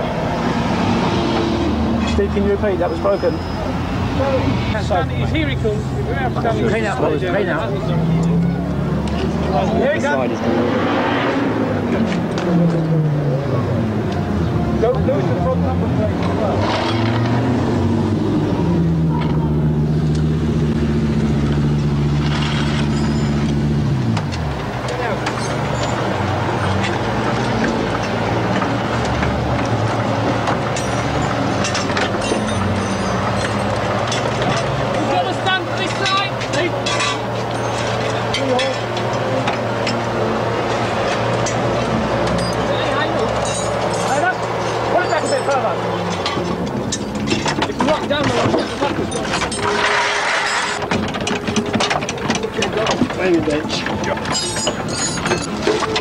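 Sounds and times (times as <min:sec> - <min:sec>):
metal tool clanks and clicks: 0:25.2 - 0:29.8, 0:30.4 - 0:35.1, 0:35.8 - 0:40.1, 0:40.7 - 0:56.0.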